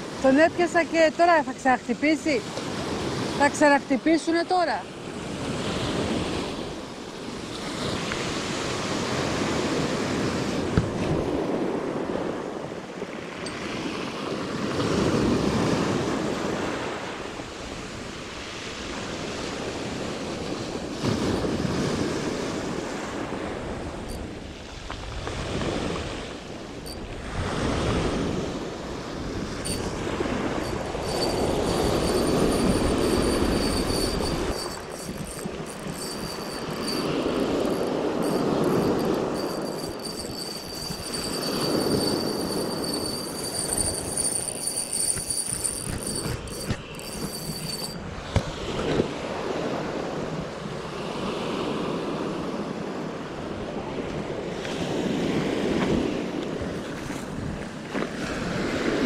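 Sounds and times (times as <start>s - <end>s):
fishing reel winding: 29.6s - 48.0s
thin high whine: 29.7s - 48.1s.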